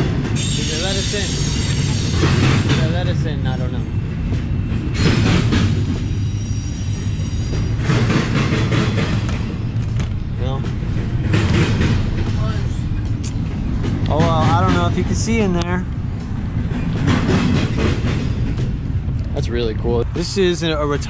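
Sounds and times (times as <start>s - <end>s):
freight train rumbling past: 0.0s - 21.0s.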